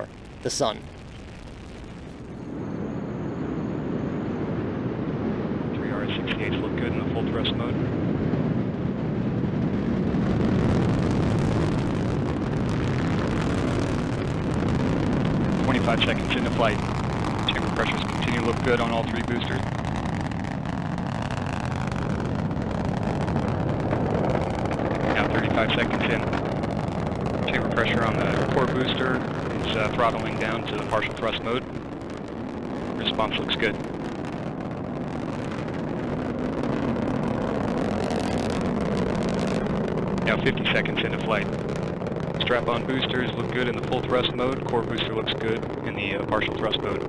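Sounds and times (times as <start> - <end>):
rocket engines roaring: 0.0 - 47.0.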